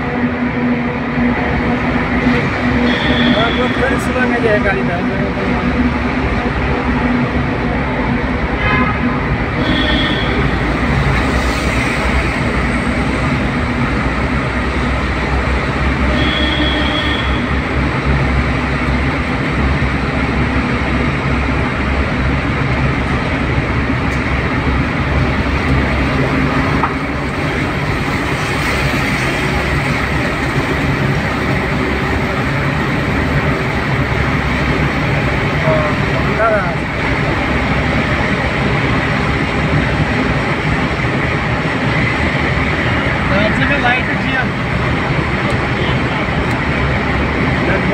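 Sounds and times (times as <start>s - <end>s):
vehicle road and engine noise: 0.0s - 47.9s.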